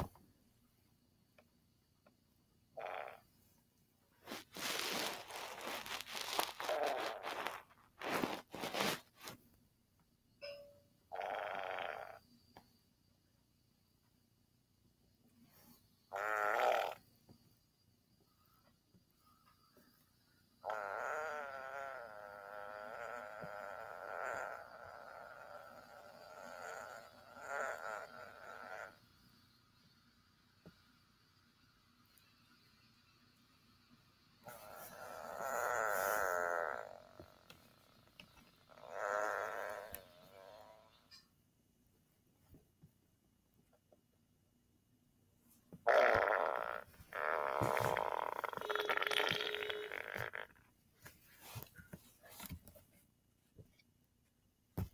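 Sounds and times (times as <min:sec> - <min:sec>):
fart: 0:02.8 - 0:03.3, 0:04.2 - 0:09.4, 0:11.1 - 0:12.2, 0:16.1 - 0:17.0, 0:20.6 - 0:29.1, 0:34.4 - 0:41.2, 0:45.8 - 0:50.7.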